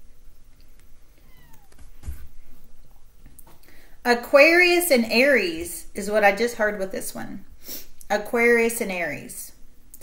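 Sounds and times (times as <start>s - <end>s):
cat meowing: 1.2s - 1.8s.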